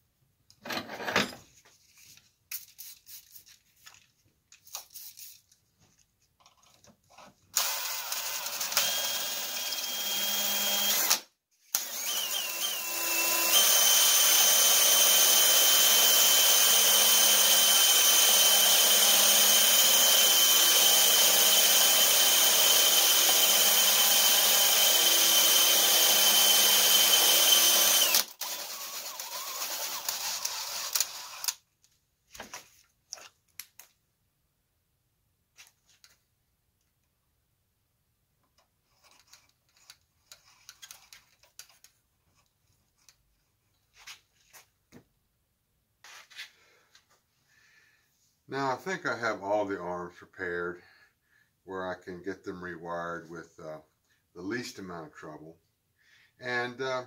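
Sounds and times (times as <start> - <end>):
drill grinding glass: 11.8 - 31.5.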